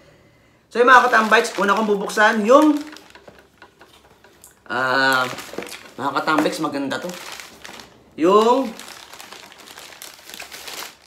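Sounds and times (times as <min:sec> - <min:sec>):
newspaper crinkling and rustling: 0:00.8 - 0:11.0.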